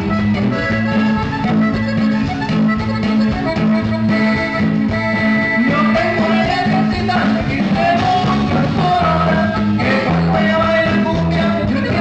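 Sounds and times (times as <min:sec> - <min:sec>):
band playing with accordion: 0:00.0 - 0:12.0.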